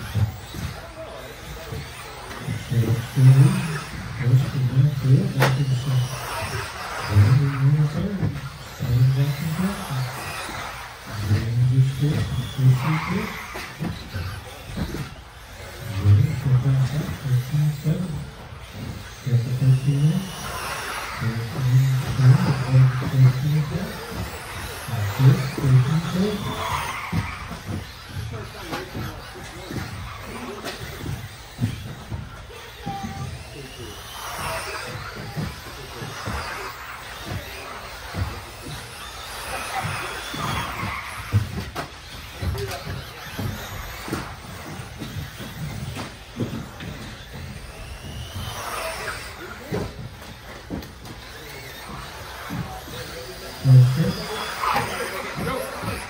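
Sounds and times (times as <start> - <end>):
electric motor whines: 0.0 - 56.0.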